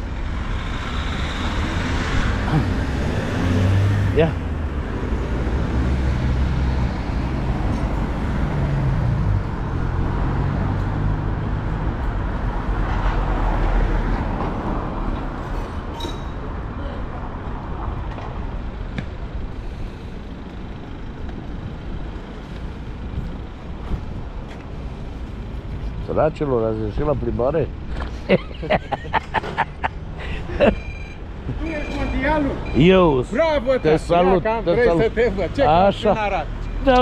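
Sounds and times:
cars passing: 0.0s - 37.0s.

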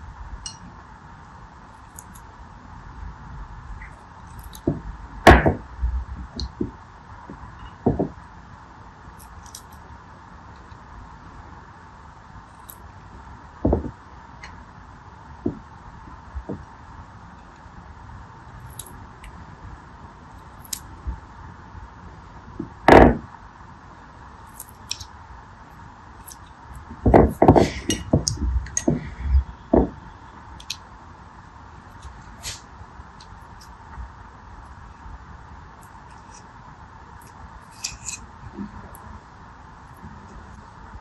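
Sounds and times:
steady faint hiss: 0.0s - 41.0s.

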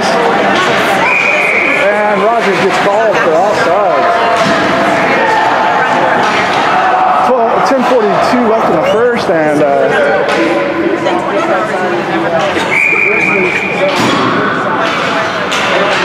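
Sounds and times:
people talking: 0.0s - 16.0s.

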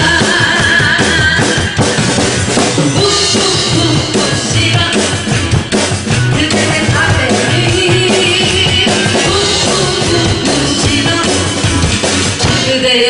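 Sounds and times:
drum kit playing busy beat: 0.0s - 13.0s.

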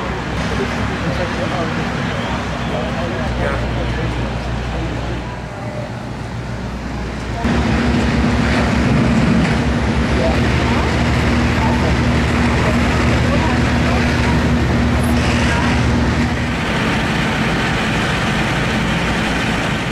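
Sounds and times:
fire truck diesel engines running: 0.0s - 19.9s
noise of hoses: 7.3s - 19.9s.

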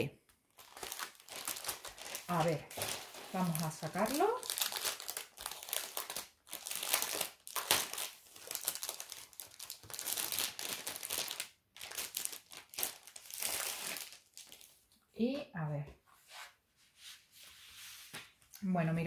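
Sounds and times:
packaging crinkling and rustling: 0.4s - 14.9s.

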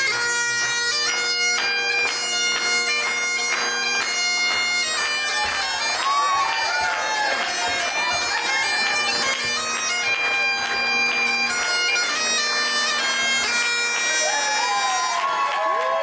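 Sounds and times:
bagpipes playing: 0.0s - 15.3s
crowd voices: 5.2s - 16.0s.

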